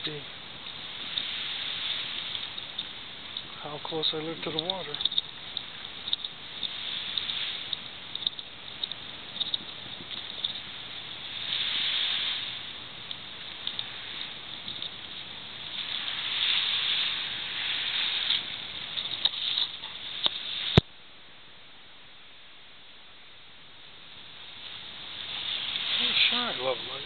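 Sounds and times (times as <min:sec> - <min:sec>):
small sea waves on a beach: 0:00.0 - 0:20.9, 0:23.5 - 0:27.0
light ticks: 0:04.4 - 0:10.6, 0:13.0 - 0:13.9, 0:14.5 - 0:15.1.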